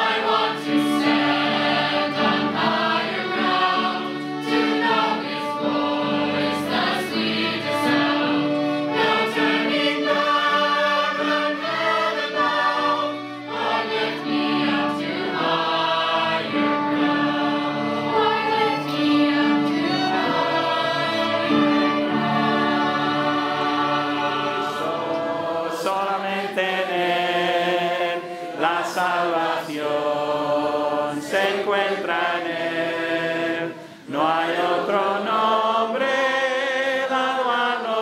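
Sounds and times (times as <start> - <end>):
violins: 0.0 - 34.0
choir singing a hymn: 0.0 - 38.0.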